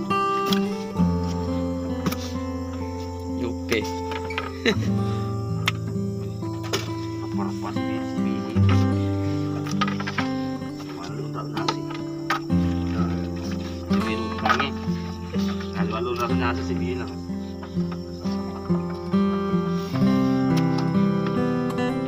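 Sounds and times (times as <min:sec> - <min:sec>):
background music sustained chords: 0:00.0 - 0:22.0.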